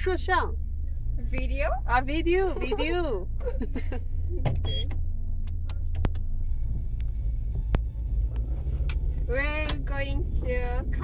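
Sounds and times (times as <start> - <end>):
car driving rumble from inside: 0.0 - 11.0.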